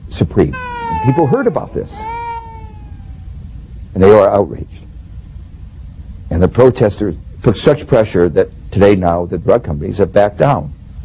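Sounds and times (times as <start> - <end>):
young child wailing: 0.5 - 3.4.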